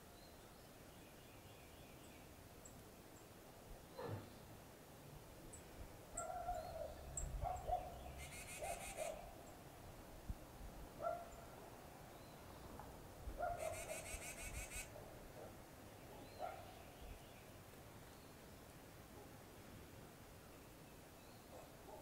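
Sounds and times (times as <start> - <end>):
low bird calls: 6.2 - 9.3, 13.4 - 14.9
rapid high bird trills: 8.1 - 9.2, 13.6 - 14.9.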